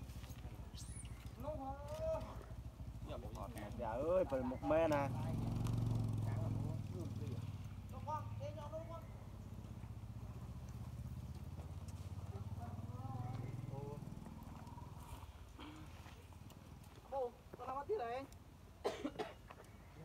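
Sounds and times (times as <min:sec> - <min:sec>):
low engine hum: 0:00.0 - 0:17.2.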